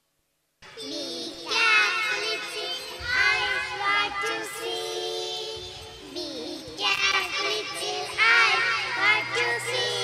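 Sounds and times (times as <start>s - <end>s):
girls singing together: 0.6s - 10.0s.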